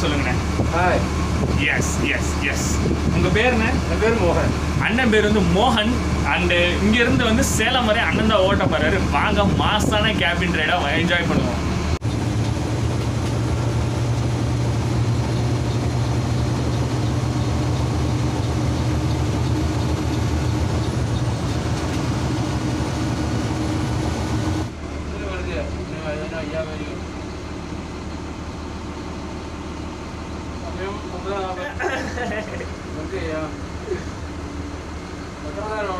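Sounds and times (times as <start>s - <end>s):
bus engine and road hum: 0.0s - 35.9s.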